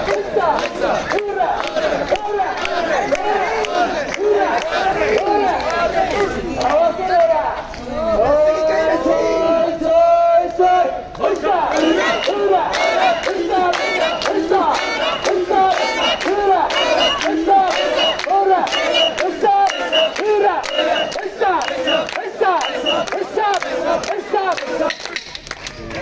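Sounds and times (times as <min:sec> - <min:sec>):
sharp hand claps: 0:00.0 - 0:07.8, 0:11.2 - 0:26.0
crowd chanting rhythmic call: 0:00.0 - 0:25.8.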